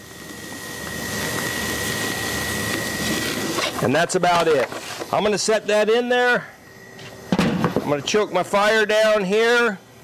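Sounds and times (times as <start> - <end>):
steak sizzling on a grill: 0.0 - 5.8.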